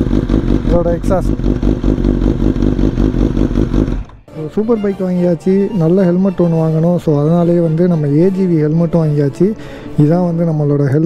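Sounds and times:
motorcycle engine idling: 0.0s - 4.3s
person speaking: 4.3s - 11.0s.

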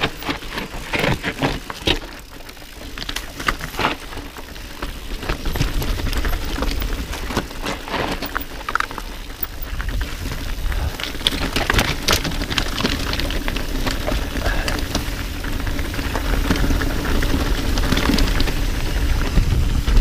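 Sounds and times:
bike clicks and rattles: 0.0s - 20.0s
bike tyres crunching over gravel: 0.0s - 20.0s.

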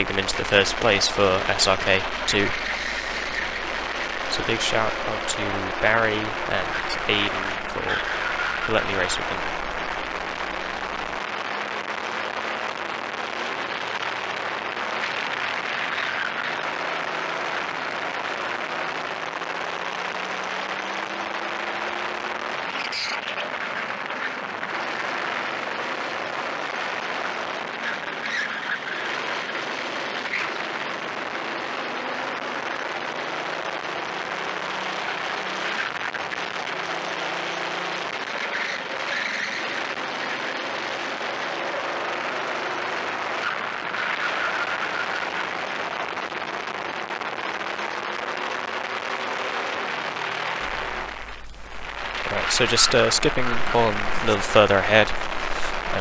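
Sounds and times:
kart engine revving: 0.0s - 11.2s.

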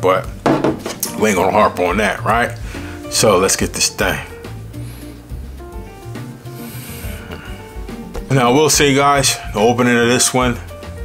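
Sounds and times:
soft background music: 0.0s - 11.0s
atomizer spray hiss: 4.5s - 8.2s.

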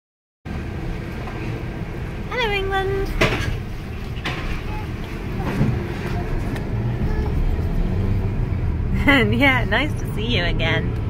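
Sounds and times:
car engine and tyres rumble: 0.5s - 11.0s.

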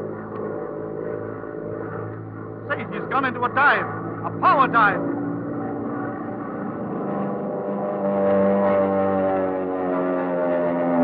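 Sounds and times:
propeller plane engine droning: 0.0s - 11.0s.

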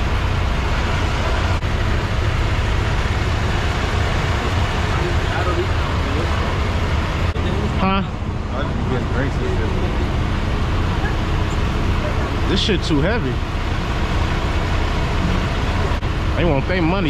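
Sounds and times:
truck engines idling: 0.0s - 17.0s
faint voices: 4.2s - 13.4s.

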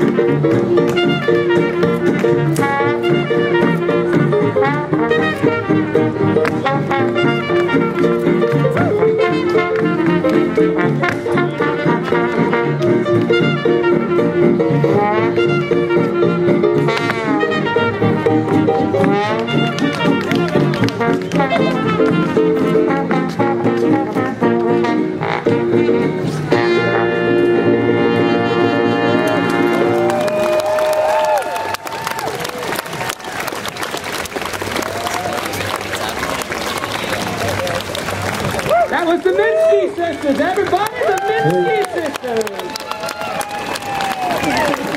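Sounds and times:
jazz band with brass playing swing: 0.0s - 33.5s
crowd applauding and cheering: 19.0s - 21.8s, 28.8s - 44.9s.

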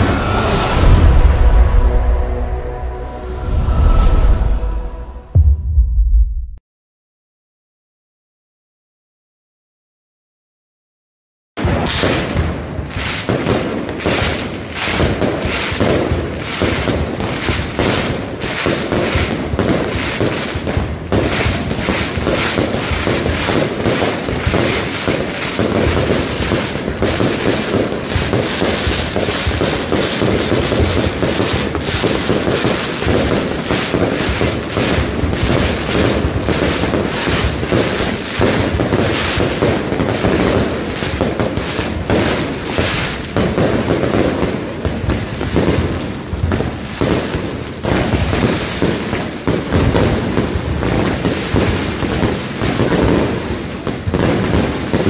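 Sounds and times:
firecracker barrage: 0.0s - 6.6s, 11.6s - 55.0s.

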